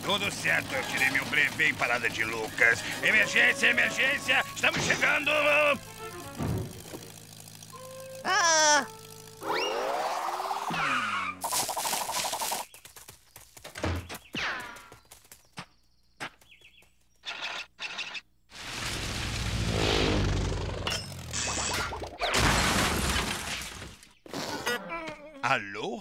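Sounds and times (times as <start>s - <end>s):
whirring spin: 0.0s - 12.7s, 18.8s - 22.3s
loud burst of noise: 18.5s - 21.7s
long rumble: 18.7s - 21.7s.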